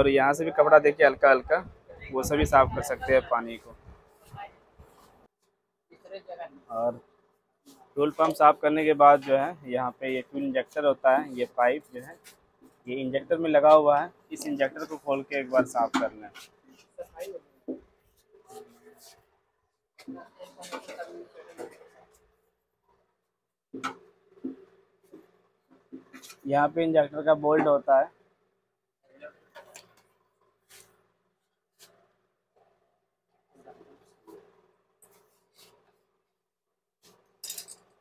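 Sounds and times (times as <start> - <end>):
clink of small metal parts: 37.4 - 38.0.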